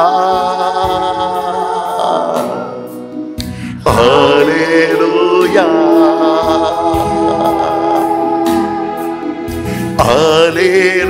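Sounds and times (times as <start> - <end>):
man singing into a microphone: 0.0 - 3.0, 3.7 - 11.0.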